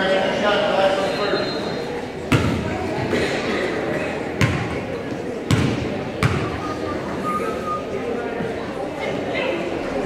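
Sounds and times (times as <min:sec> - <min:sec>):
crowd chatter: 0:00.0 - 0:10.0
basketball bouncing on hardwood: 0:04.4 - 0:04.8, 0:05.5 - 0:06.5.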